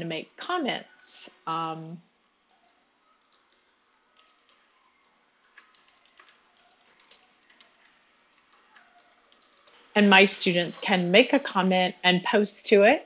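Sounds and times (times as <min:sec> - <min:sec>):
typing on computer keyboard: 0:02.4 - 0:09.9.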